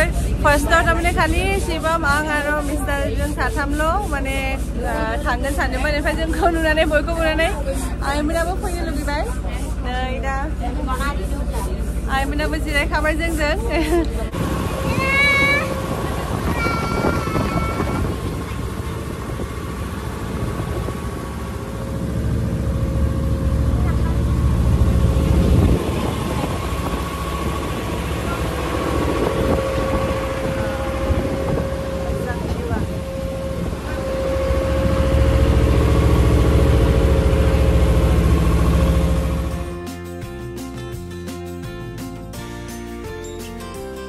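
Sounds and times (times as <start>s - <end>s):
boat engine humming: 0.0s - 44.0s.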